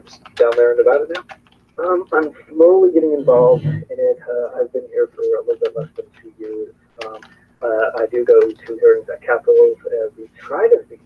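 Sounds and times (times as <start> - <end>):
man talking over video call: 0.0 - 1.2, 1.8 - 11.0.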